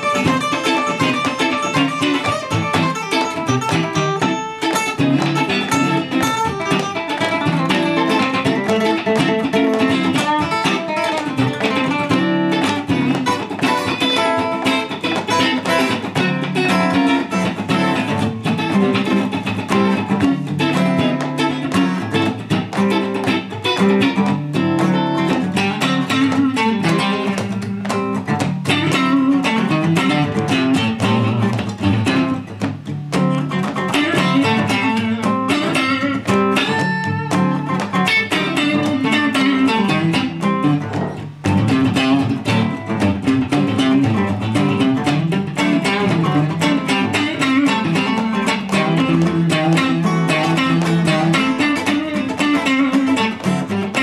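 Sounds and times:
acoustic guitar: 0.0s - 54.0s
electric guitar: 0.0s - 54.0s.

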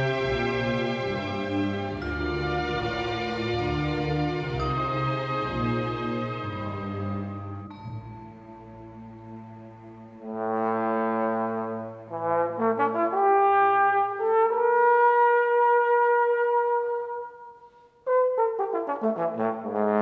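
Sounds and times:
solo trombone melody: 10.2s - 20.0s.

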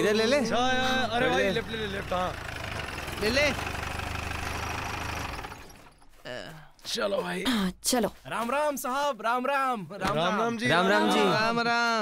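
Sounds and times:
jeep engine rumbling: 0.0s - 6.2s.

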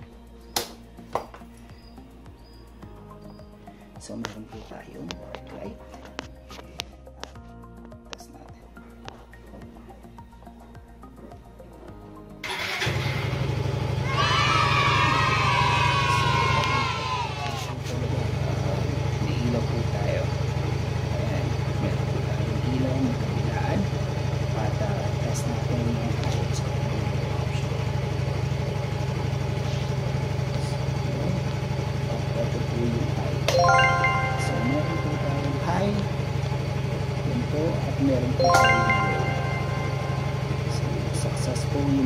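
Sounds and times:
scooter engine starting and idling: 12.4s - 14.0s, 17.8s - 33.5s.

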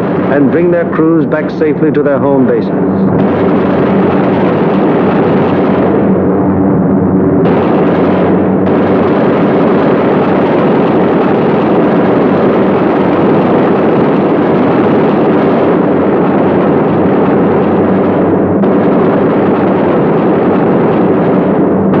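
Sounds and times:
aircraft propeller engines roaring: 0.0s - 22.0s.

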